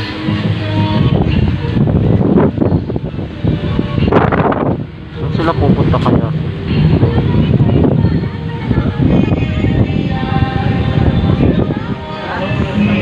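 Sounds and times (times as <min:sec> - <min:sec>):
street noise: 0:00.0 - 0:13.0
wind on microphone: 0:00.0 - 0:13.0.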